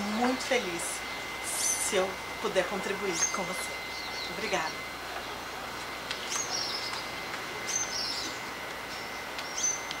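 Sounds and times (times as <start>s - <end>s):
bird calling with buzzy trill: 0.0s - 10.0s
thin steady high tone: 0.0s - 10.0s.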